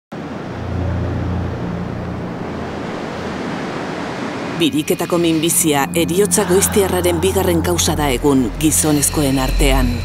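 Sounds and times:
waves breaking on beach: 0.2 - 4.8
low hum: 0.2 - 10.0.

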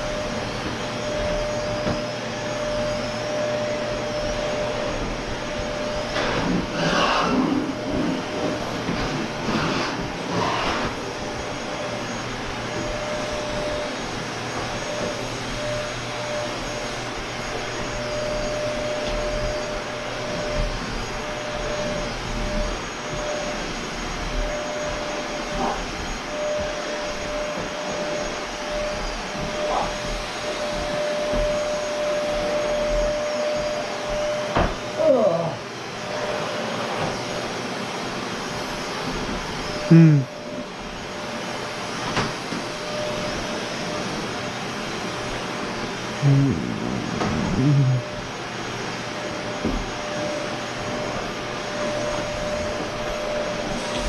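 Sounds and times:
vacuum cleaner running: 0.0 - 54.0.

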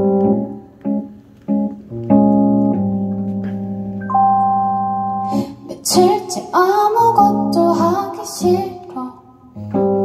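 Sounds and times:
electronic keyboard chord: 0.0 - 6.2.

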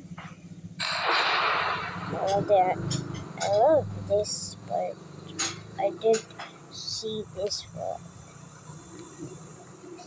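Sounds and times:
low hum with hiss: 0.0 - 10.0.

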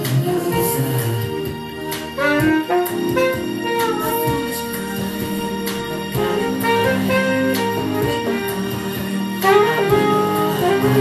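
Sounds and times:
recorded backing track: 0.0 - 11.0
saxophone playing: 0.0 - 11.0.

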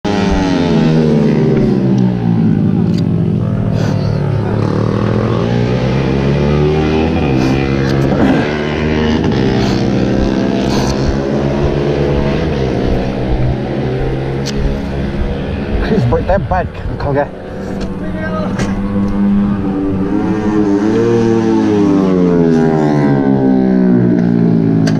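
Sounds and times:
motorcycle engine running: 0.0 - 24.8
short knocks: 9.6 - 16.0.

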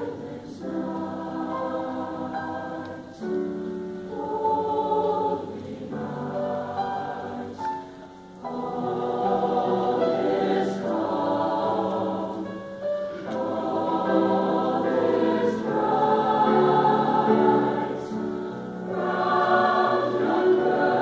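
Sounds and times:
choir singing in parts: 0.0 - 21.0.

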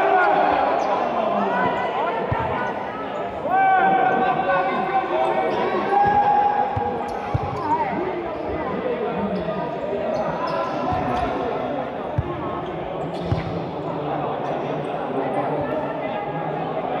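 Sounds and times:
shouting voices echoing: 0.0 - 17.0.

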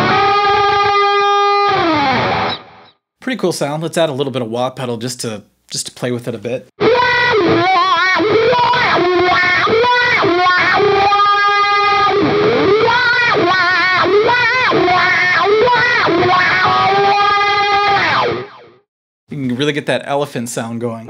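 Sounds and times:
distorted electric guitar with wah: 0.0 - 2.9, 6.8 - 18.8.

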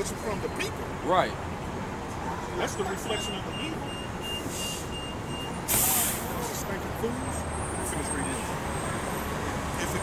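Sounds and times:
traffic noise: 0.0 - 10.0
bus air brakes hissing: 4.2 - 6.6.

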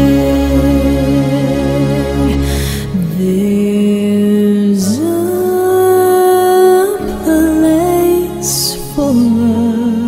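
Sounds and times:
soft musical accompaniment: 0.0 - 10.0.

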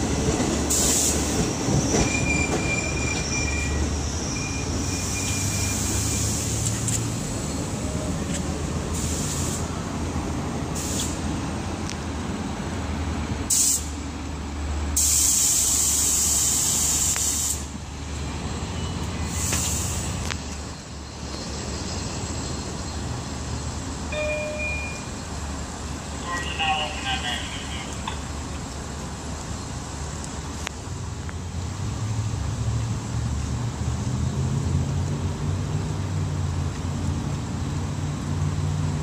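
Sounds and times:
diesel train rumbling: 0.0 - 39.0
air brakes hissing: 0.6 - 7.9, 8.9 - 9.8, 10.7 - 11.3, 13.5 - 14.0, 15.0 - 17.8, 19.1 - 20.2.

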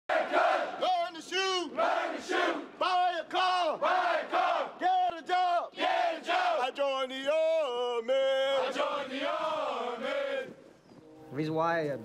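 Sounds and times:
man calling drill chant: 0.7 - 1.8, 2.6 - 3.9, 4.6 - 5.8.

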